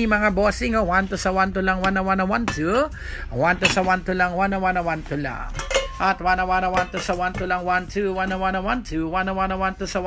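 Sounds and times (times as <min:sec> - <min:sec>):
glass lid clinking on ceramic dish: 0:05.6 - 0:07.4.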